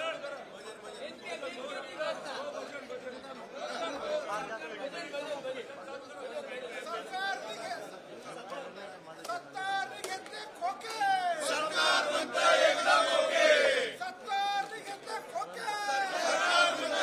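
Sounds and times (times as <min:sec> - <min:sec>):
men chanting slogans: 0:11.4 - 0:14.0, 0:15.7 - 0:17.0.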